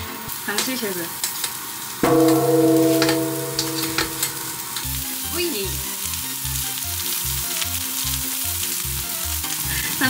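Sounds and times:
food sizzling in a frying pan: 0.0 - 10.0
ringing bell-like tone: 2.0 - 5.1.

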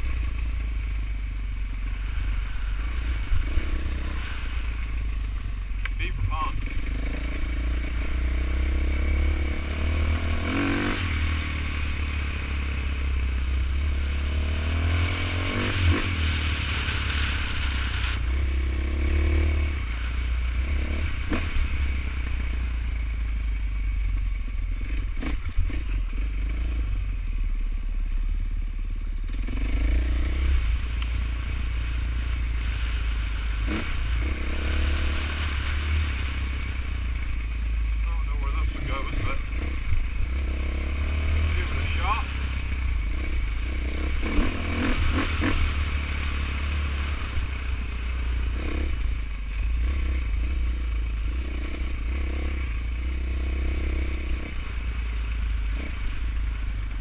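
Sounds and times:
dirt bike engine revving: 1.5 - 22.9, 29.2 - 57.0.

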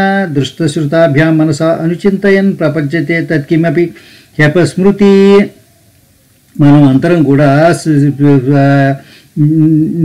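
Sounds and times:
man chanting: 0.0 - 5.6, 6.6 - 10.0.

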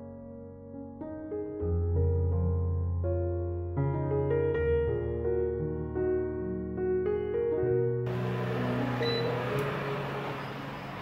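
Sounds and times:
soft background music: 0.0 - 10.9
air fryer running: 8.1 - 11.0
short high beep: 9.0 - 9.4.

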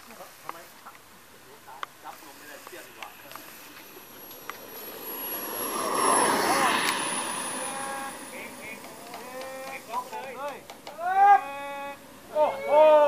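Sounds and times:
rushing noise: 2.1 - 10.8
model airplane motor whine: 2.3 - 10.3.

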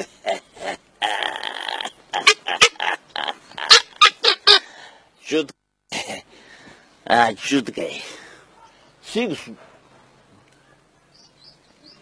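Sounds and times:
man laughing: 0.0 - 4.6, 5.9 - 6.3.

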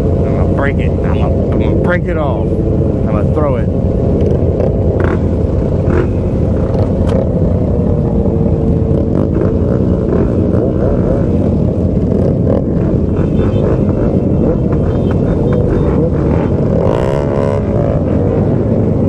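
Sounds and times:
motorcycles idling: 0.0 - 16.9.

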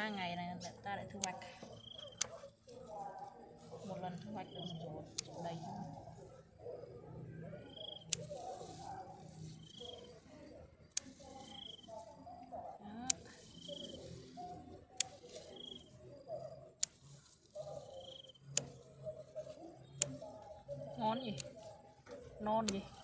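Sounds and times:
scissors snipping stems: 0.6 - 6.1, 7.7 - 10.0, 10.9 - 11.9, 12.8 - 23.0.

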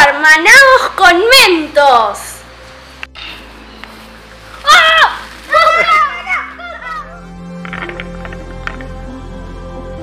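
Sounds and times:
background music: 0.0 - 10.0
children shouting excitedly: 4.6 - 7.4.

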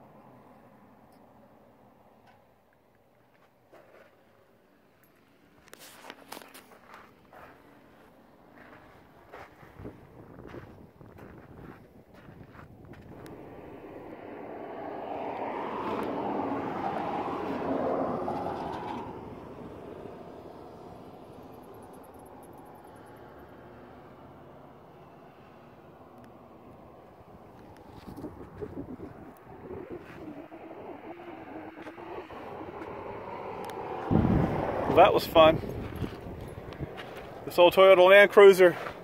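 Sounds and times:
vehicle passing by: 6.3 - 39.0.

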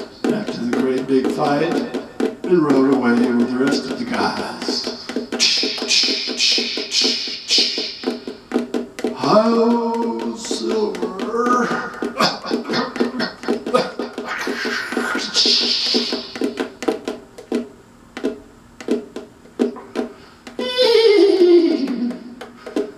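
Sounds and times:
taps on ukulele body: 0.0 - 22.9
vocal sound effects: 4.3 - 8.0, 9.2 - 16.4.

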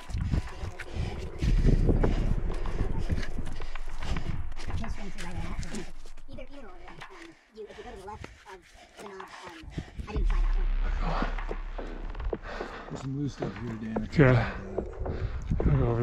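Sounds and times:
people talking: 0.0 - 1.6, 4.7 - 11.4, 12.9 - 15.0, 15.6 - 16.0
low microphone rumble: 0.0 - 7.0, 10.0 - 16.0.

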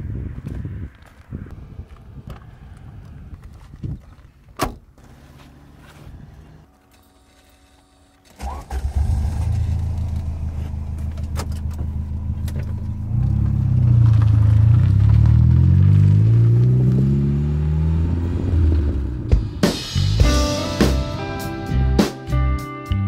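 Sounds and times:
car engine starting and revving: 8.3 - 21.2.

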